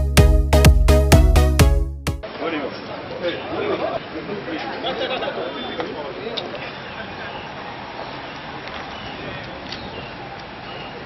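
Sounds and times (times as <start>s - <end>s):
electronic jingle music: 0.0s - 2.2s
indistinct chatter of voices: 2.2s - 11.0s.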